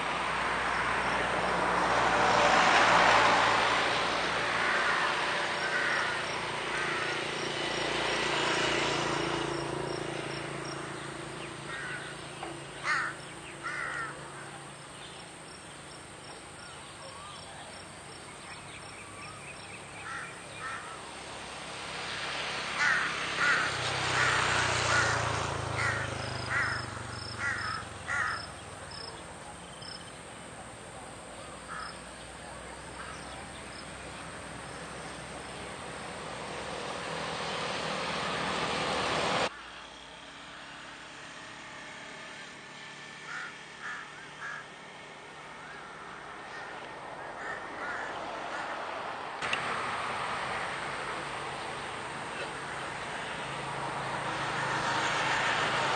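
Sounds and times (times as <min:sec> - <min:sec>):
crows cawing: 0:04.5 - 0:07.3, 0:11.6 - 0:14.7, 0:20.0 - 0:21.0, 0:22.8 - 0:28.6, 0:31.7 - 0:32.0, 0:33.0 - 0:33.4, 0:43.2 - 0:44.9, 0:45.5 - 0:49.0.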